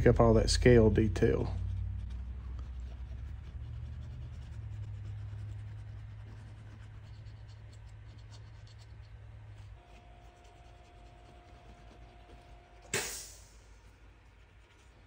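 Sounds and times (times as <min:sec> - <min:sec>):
cotton swab scratching: 0:00.0 - 0:15.0
low steady hum: 0:00.0 - 0:15.0.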